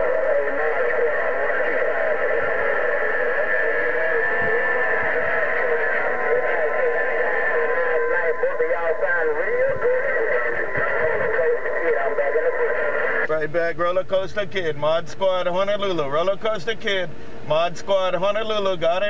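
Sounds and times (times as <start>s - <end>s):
garbled radio voice: 0.0s - 19.0s
radio static: 0.0s - 19.0s.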